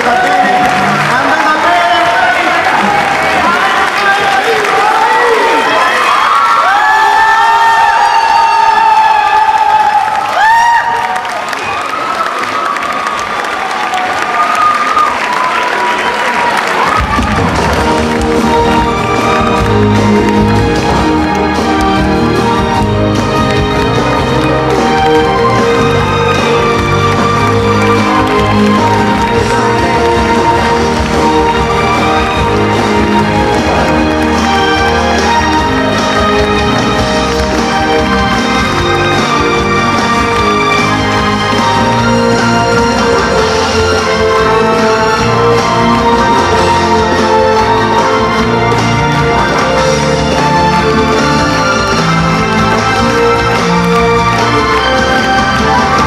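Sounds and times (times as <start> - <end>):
audience cheering: 0.0 - 56.0
musical backing track with beat: 17.1 - 56.0.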